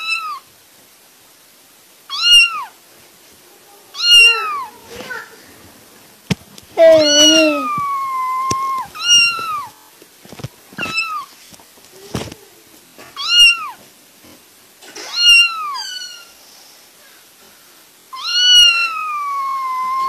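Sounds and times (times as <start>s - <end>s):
kitten meowing: 2.1s - 2.7s, 3.9s - 4.7s, 6.8s - 9.7s, 10.8s - 11.3s, 13.2s - 13.8s, 15.0s - 16.3s, 18.2s - 20.0s.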